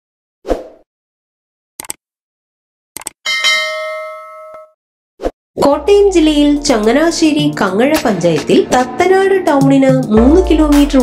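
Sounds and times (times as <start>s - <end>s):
bright bell ding: 3.3s - 4.8s.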